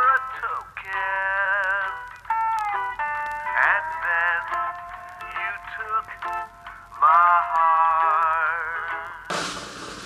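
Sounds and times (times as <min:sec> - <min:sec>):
man singing: 0:00.0 - 0:09.3
band accompaniment: 0:09.3 - 0:10.0.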